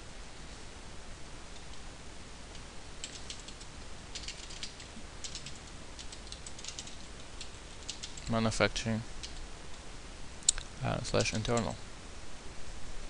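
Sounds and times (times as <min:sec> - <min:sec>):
steady low hiss: 0:00.0 - 0:13.0
computer keyboard typing: 0:03.0 - 0:08.3.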